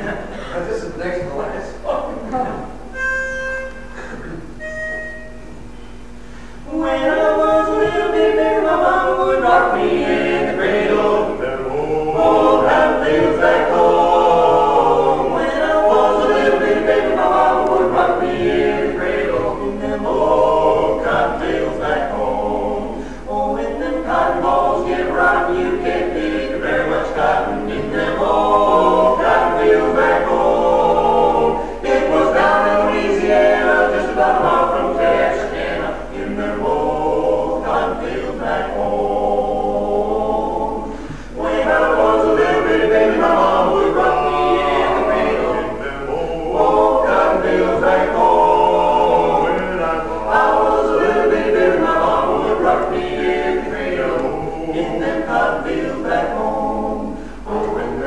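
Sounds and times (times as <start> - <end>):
men singing in close harmony: 6.7 - 58.0.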